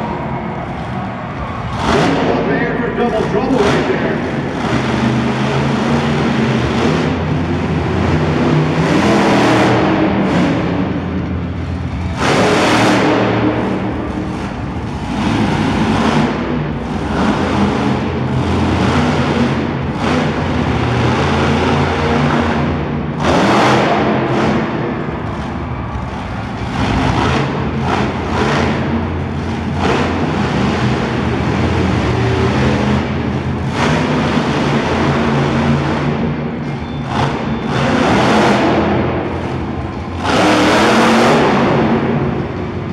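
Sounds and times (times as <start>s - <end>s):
truck engine revving: 0.0s - 42.9s.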